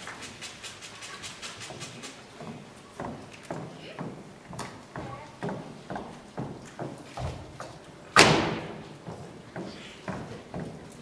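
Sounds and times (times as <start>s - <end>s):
high-heeled footsteps on stage: 2.3s - 7.8s, 8.4s - 11.0s.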